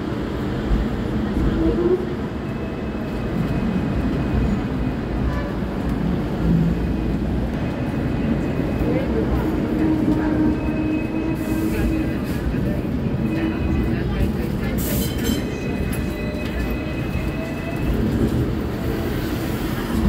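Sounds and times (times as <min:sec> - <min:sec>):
tram wheels and motor rumbling: 0:00.0 - 0:20.0.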